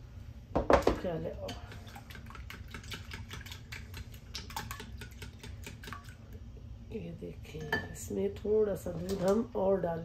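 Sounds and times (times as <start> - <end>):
whisk clicking against ceramic bowl: 1.5 - 6.1.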